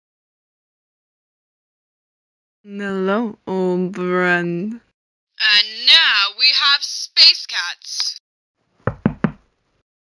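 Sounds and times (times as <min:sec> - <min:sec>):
knocks on a door: 0:08.8 - 0:09.5.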